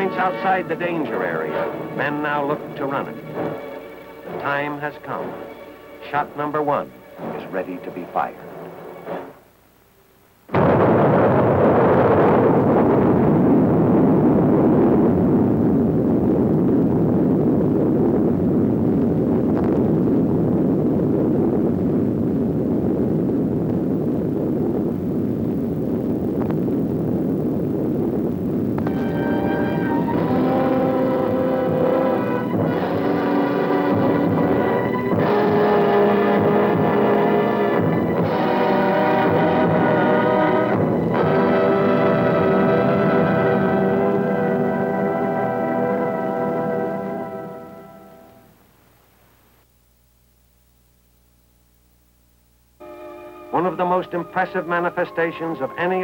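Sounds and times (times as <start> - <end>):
orchestral music: 0.0 - 9.5, 28.8 - 48.5, 52.8 - 56.0
loud explosion roar: 10.5 - 47.5.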